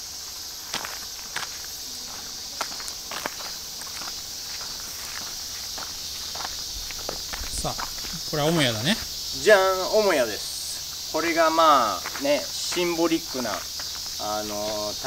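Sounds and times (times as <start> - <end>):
footsteps crunching on dirt: 0.0 - 15.0
insect chorus: 0.0 - 15.0.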